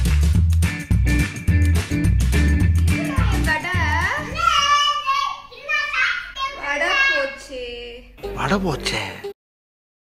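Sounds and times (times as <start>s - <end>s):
music with bass beat: 0.0s - 4.1s
high-pitched child-like voice: 2.9s - 3.5s, 4.2s - 7.4s.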